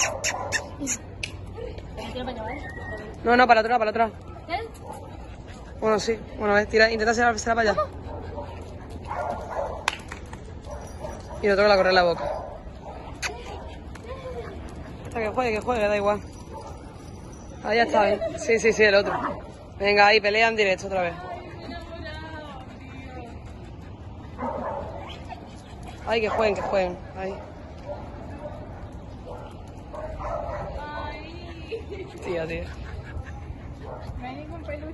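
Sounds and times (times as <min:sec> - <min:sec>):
dog barking and yipping: 0:00.0 - 0:01.1, 0:07.7 - 0:09.9, 0:24.3 - 0:30.8
dog barking: 0:08.1 - 0:09.9, 0:24.4 - 0:25.2, 0:29.2 - 0:30.7.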